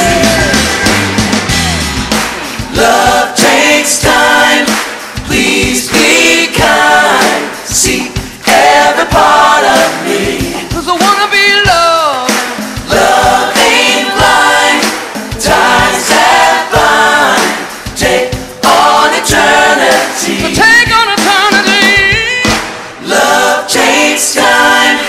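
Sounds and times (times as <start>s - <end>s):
drum hits: 0.0s - 24.1s
gospel group singing in harmony: 0.0s - 25.0s
live band: 0.0s - 25.0s.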